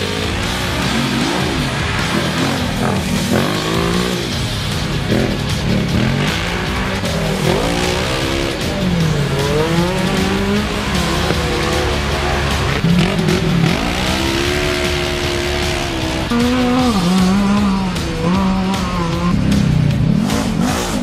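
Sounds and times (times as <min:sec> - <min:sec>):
racing engines revving: 0:00.0 - 0:21.0.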